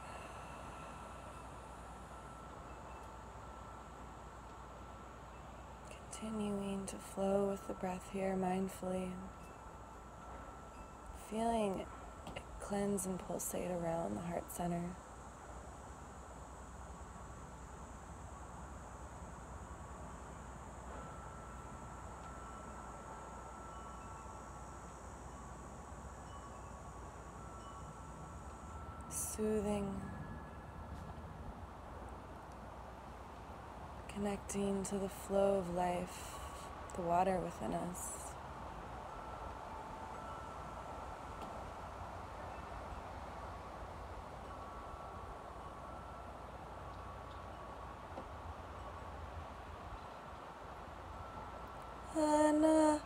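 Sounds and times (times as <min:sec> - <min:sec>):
low hiss and rumble: 0:00.0 - 0:53.0
thin high sustained tones: 0:00.0 - 0:53.0.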